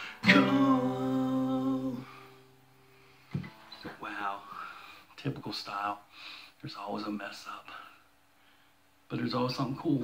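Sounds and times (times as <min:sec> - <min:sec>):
acoustic guitar chord: 0:00.0 - 0:03.9.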